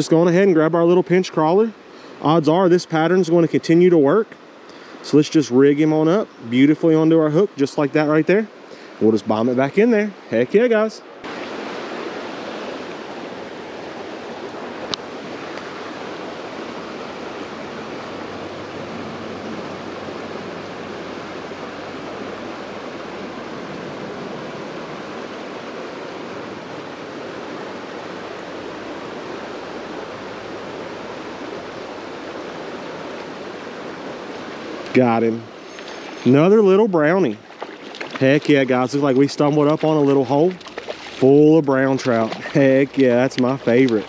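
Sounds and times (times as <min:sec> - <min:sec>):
creek water rushing: 0:00.0 - 0:44.0.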